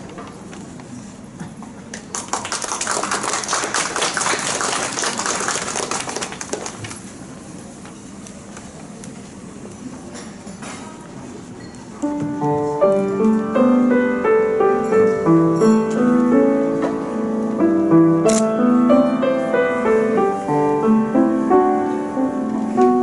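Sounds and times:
audience applause: 2.1 - 7.0
grand piano playing: 12.0 - 23.0.

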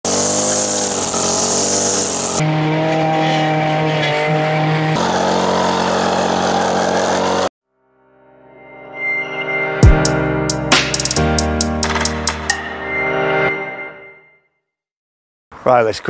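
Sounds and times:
strimmer cutting grass: 0.0 - 7.5.

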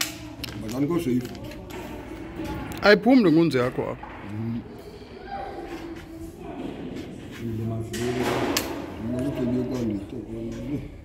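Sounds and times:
man talking in a low voice: 7.3 - 11.0.

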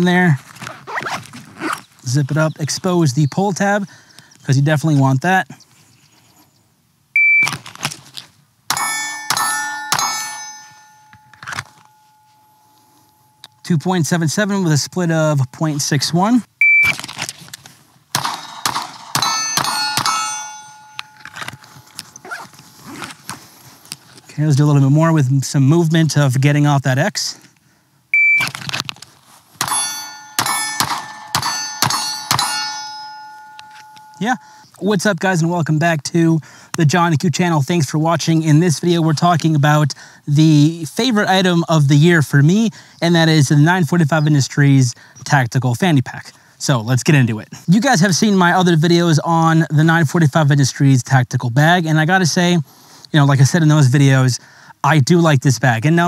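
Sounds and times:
shot timer beep: 7.2 - 7.5, 16.6 - 17.0, 28.2 - 28.5
rustle of gun drawn from pouch: 7.5 - 8.4, 16.9 - 17.9, 21.3 - 24.3, 28.4 - 29.6
pistol shots with metallic ring: 8.7 - 13.4, 18.2 - 22.3, 29.6 - 34.2.

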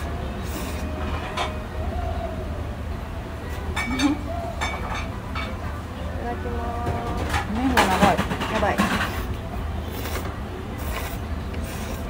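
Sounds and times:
noodles being slurped: 10.8 - 12.0.

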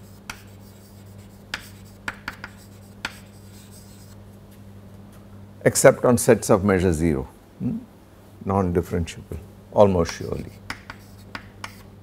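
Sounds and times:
chalk tapping and scratching: 0.0 - 4.2, 10.0 - 11.9
steady low hum: 0.0 - 12.0.

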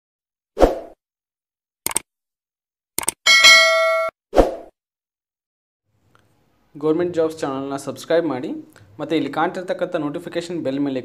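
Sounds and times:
bright bell chime: 3.3 - 4.1.

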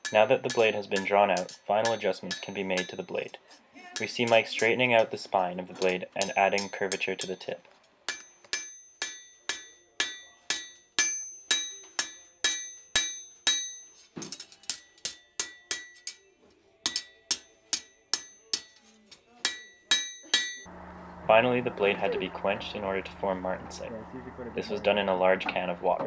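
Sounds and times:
hammer striking steel on anvil: 0.0 - 3.2, 5.8 - 7.5, 8.1 - 20.7.

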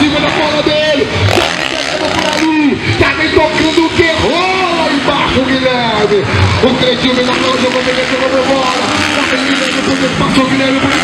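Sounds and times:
dirt bikes running: 0.0 - 11.0.

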